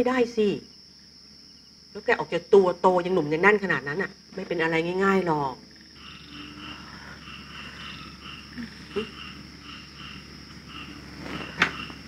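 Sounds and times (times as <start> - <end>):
insects and frogs chorus: 0.0 - 12.0.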